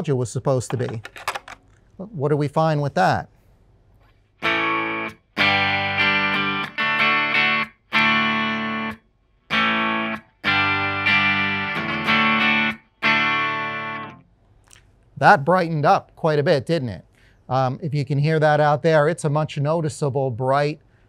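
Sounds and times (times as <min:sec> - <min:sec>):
electric guitar chord strums: 0:04.4 - 0:14.3.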